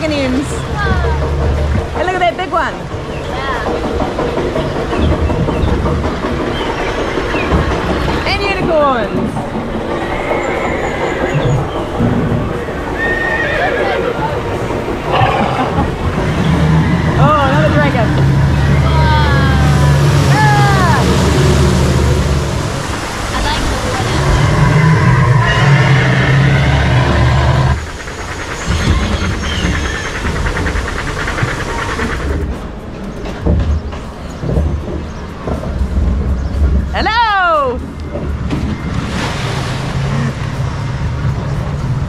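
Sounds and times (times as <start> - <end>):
horse-like whinnies: 13.0 - 14.1, 15.1 - 15.9
steady low drone: 13.6 - 37.0.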